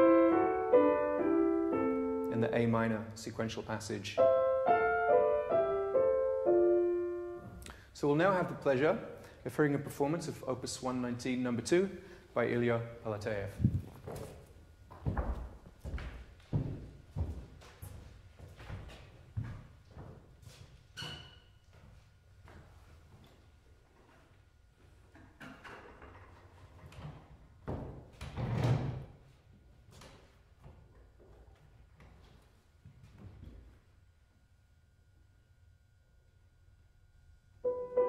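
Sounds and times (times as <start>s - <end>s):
footsteps on wooden stage: 13.5s - 20.8s.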